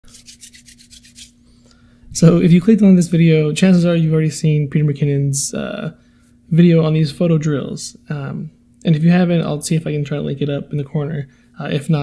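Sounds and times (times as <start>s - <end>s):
hands rubbing together: 0.0s - 1.4s
faint steady hum: 0.1s - 12.0s.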